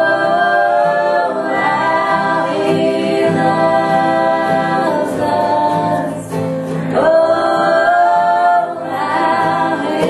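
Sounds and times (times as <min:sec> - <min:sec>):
acoustic guitar: 0:00.0 - 0:10.0
band singing in harmony: 0:00.0 - 0:10.0.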